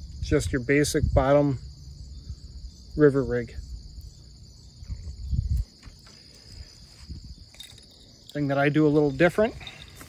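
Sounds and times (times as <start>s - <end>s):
low rumble on microphone: 0.0s - 7.6s
high-pitched insect chorus: 0.0s - 10.0s.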